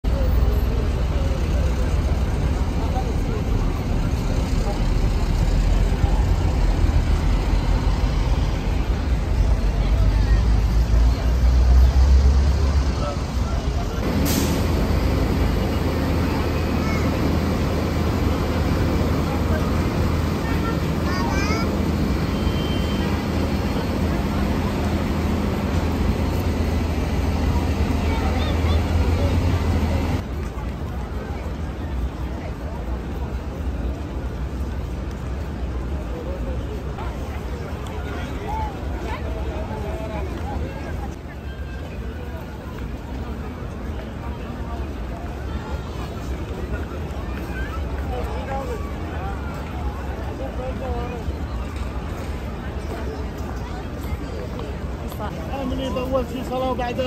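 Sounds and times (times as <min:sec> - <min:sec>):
pedestrians chattering: 0:00.0 - 0:57.0
traffic rumble: 0:00.0 - 0:57.0
heavy low rumble: 0:12.5 - 0:30.3.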